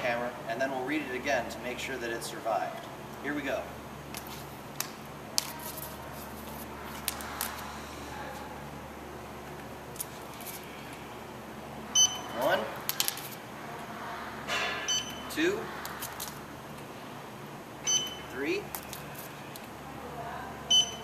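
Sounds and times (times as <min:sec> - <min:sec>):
short high beeps: 0:12.0 - 0:12.5, 0:14.9 - 0:15.3, 0:17.8 - 0:18.4, 0:20.7 - 0:21.0.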